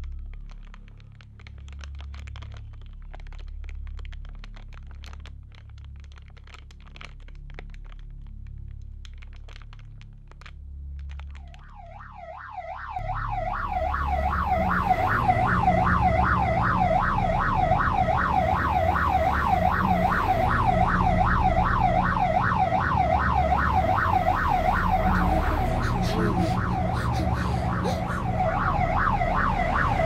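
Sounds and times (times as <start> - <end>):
emergency vehicle siren wailing: 11.4 - 30.0
vehicle and road rumble: 12.9 - 30.0.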